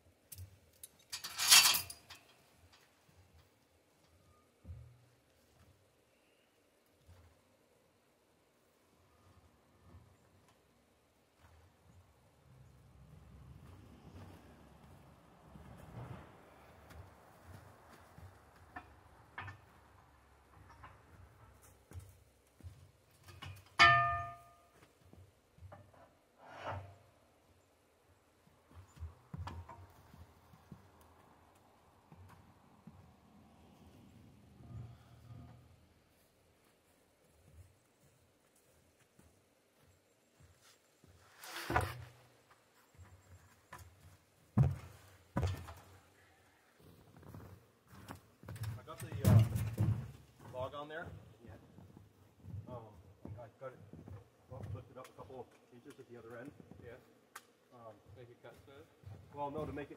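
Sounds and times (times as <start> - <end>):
metal clang: 23.3 - 24.8.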